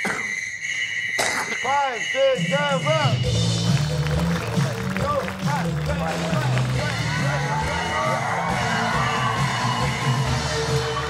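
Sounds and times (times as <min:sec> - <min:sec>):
people shouting and cheering: 0:01.6 - 0:11.0.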